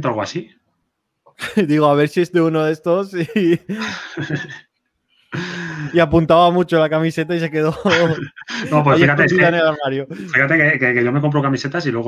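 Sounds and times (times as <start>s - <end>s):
men laughing: 1.4s - 2.0s, 3.0s - 4.8s, 5.4s - 6.1s, 7.4s - 10.4s.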